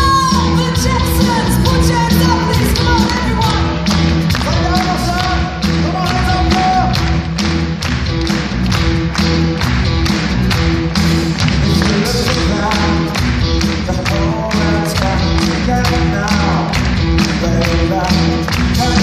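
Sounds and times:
drum beat: 0:00.0 - 0:19.0
keyboards: 0:00.0 - 0:19.0
live pop band playing: 0:00.0 - 0:19.0.

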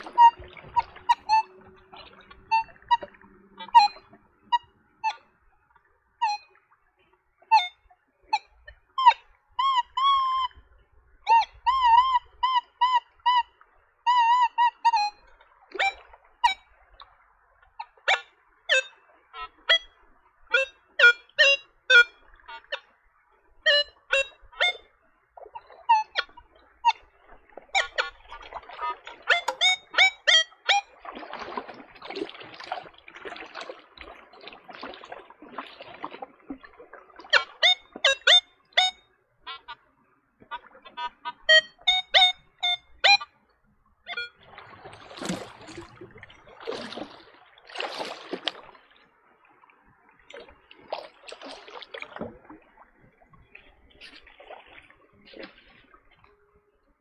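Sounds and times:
metal detector warbling tones: 0:00.0 - 0:05.6, 0:06.2 - 0:06.6, 0:07.4 - 0:10.6, 0:11.2 - 0:13.5, 0:15.8 - 0:16.7, 0:17.8 - 0:22.9, 0:23.6 - 0:24.9, 0:27.7 - 0:30.9, 0:37.3 - 0:39.8, 0:40.5 - 0:43.4, 0:44.0 - 0:44.4
metal detector short beeps: 0:00.1 - 0:05.2, 0:07.5 - 0:08.4, 0:29.3 - 0:30.9, 0:37.3 - 0:39.8, 0:41.0 - 0:43.3, 0:44.1 - 0:44.4.

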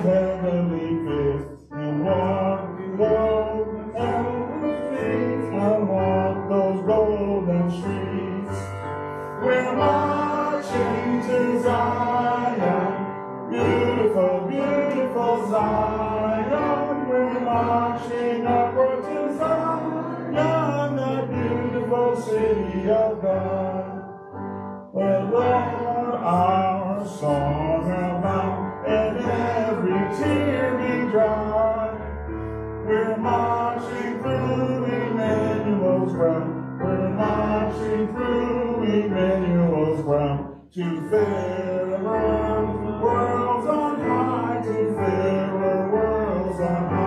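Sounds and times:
congregation singing a hymn: 0:00.0 - 0:24.2, 0:25.0 - 0:32.2, 0:32.9 - 0:47.0.

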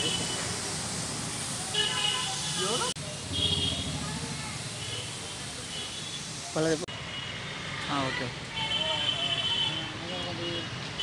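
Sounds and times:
outdoor background noise: 0:00.0 - 0:11.0
people talking: 0:02.2 - 0:05.8.

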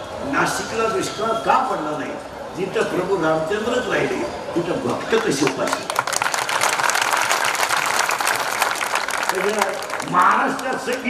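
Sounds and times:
audience applauding: 0:05.2 - 0:11.0.

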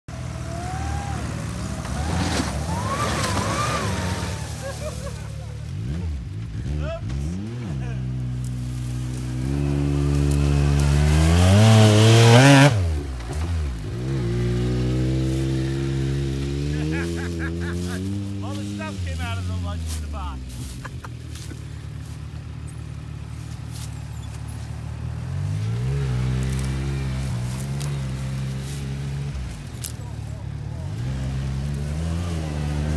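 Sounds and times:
truck engine working hard: 0:00.1 - 0:32.9.

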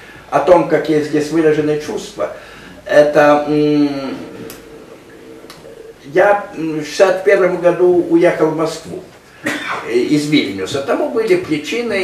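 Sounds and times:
man's voice: 0:00.3 - 0:04.9.

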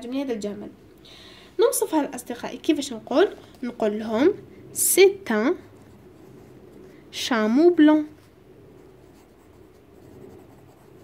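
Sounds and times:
pencil scratching on paper: 0:08.0 - 0:11.0.

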